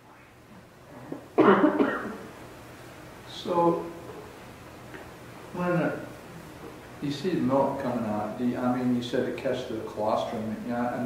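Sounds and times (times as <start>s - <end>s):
person coughing: 1.4s - 2.3s.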